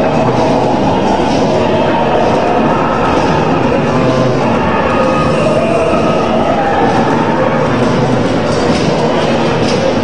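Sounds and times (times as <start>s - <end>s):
droning electronic music: 0.0s - 10.0s.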